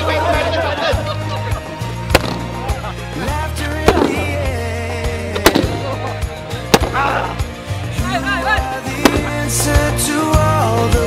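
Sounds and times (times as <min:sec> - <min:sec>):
background music with bass line: 0:00.0 - 0:11.0
balloons bursting: 0:02.1 - 0:02.7, 0:03.8 - 0:04.6, 0:05.3 - 0:07.5, 0:09.0 - 0:09.6.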